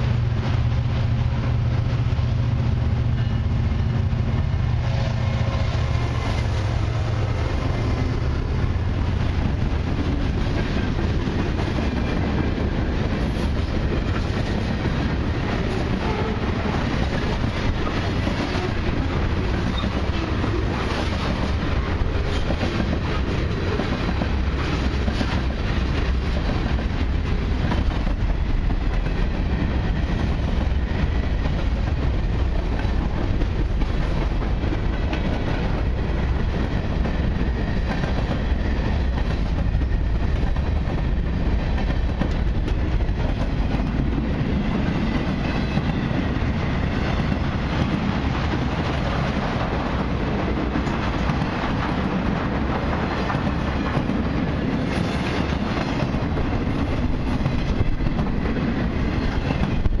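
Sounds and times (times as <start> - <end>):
freight train wheels clattering: 0.0 - 60.0.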